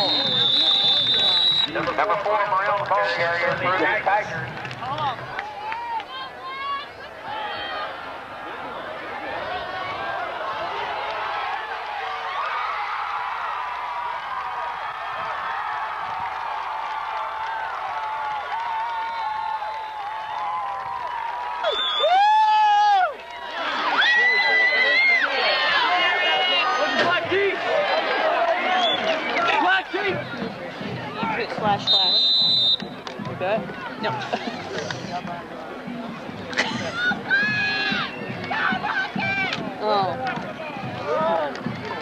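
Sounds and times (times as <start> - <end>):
crowd cheering: 0.0 - 42.0.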